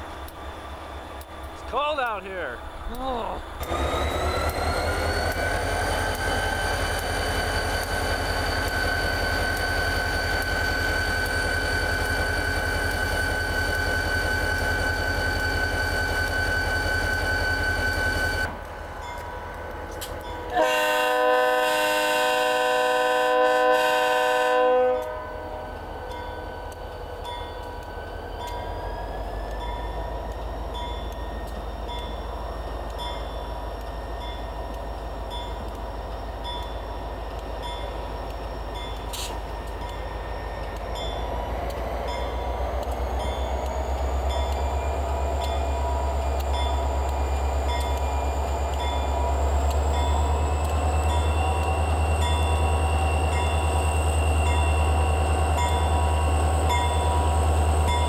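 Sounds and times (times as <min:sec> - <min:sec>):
diesel locomotive engine running: 0:00.0 - 0:58.0
locomotive air horn blast: 0:20.6 - 0:25.3.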